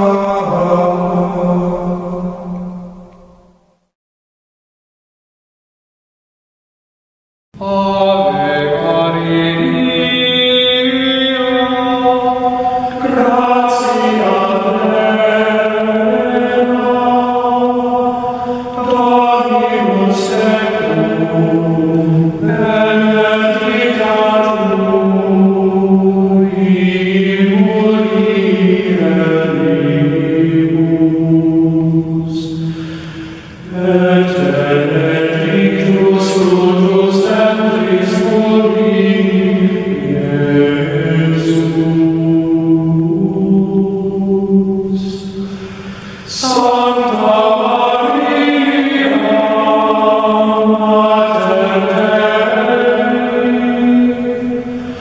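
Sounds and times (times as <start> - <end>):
choir chanting sustained notes: 0.0 - 3.9, 7.6 - 55.0.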